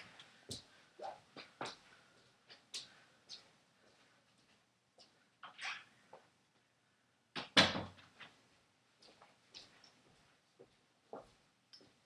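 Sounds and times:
faint footsteps: 0.0s - 5.3s, 8.2s - 12.0s.

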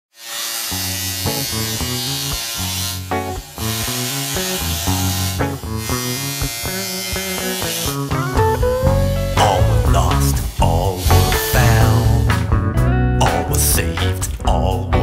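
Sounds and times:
electric hair clippers buzzing: 0.1s - 12.5s
music with bass line: 3.0s - 15.0s.

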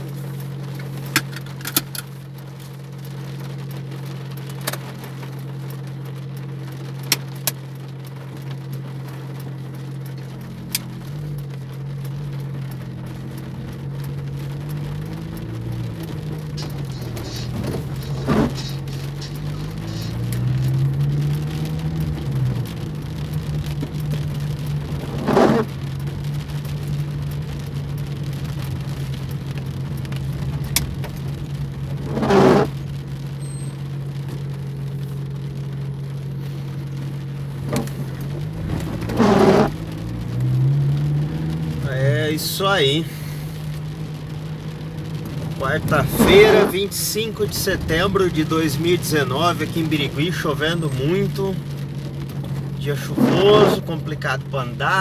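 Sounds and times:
car engine humming: 0.0s - 55.0s
windshield wipers swishing: 0.0s - 55.0s
raindrops clicking on glass: 0.6s - 36.2s.

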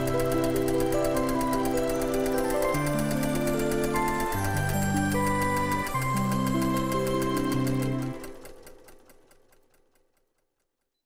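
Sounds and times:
sewing machine stitching: 0.0s - 9.8s.

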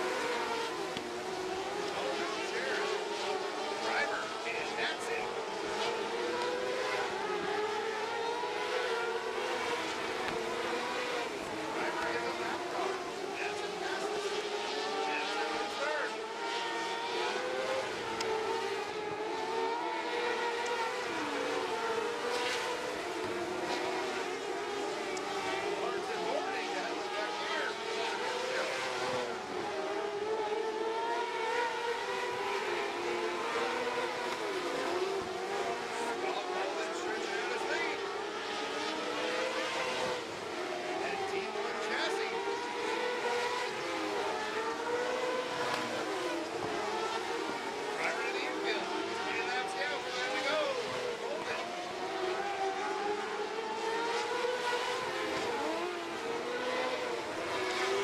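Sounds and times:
racing car engines: 0.0s - 58.0s.

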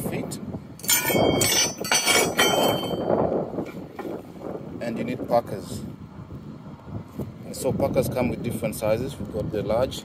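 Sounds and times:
metal bracket clinking on tile: 0.8s - 3.0s.

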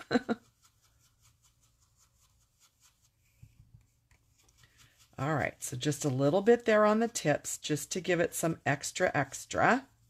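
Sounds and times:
brush rubbing on cardstock: 0.0s - 10.0s.

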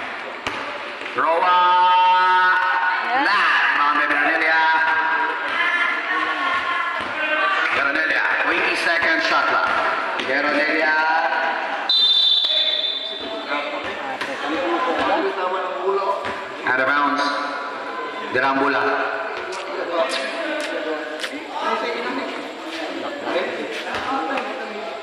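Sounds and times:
referee whistle blast: 11.9s - 13.3s
basketball bouncing on court: 16.2s - 16.5s.

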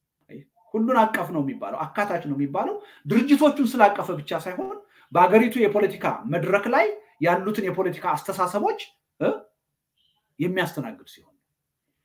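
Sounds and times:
man speaking: 0.3s - 9.5s, 10.4s - 11.4s.

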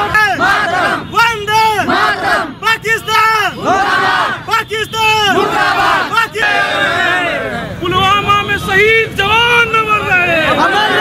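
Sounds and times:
crowd shouting slogans: 0.0s - 7.8s, 10.0s - 11.0s.

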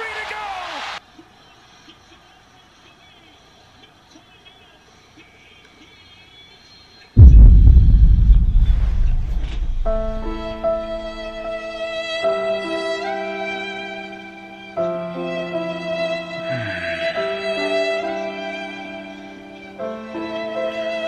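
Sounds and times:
loud deep rumble: 7.2s - 11.6s.

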